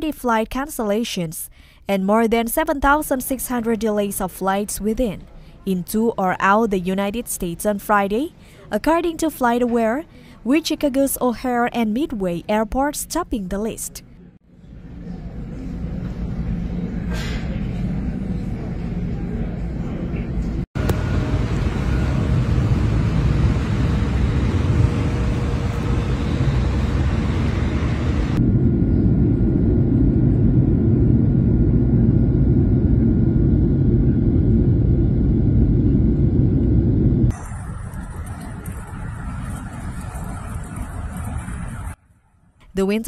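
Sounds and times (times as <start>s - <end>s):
diesel engine rumbling: 20.8s - 28.4s
loud rushing rumble: 20.8s - 42.0s.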